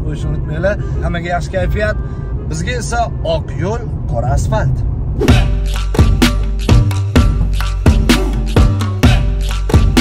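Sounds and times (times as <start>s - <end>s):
road rumble inside car: 0.0s - 5.5s
loud music with a beat: 5.3s - 10.0s.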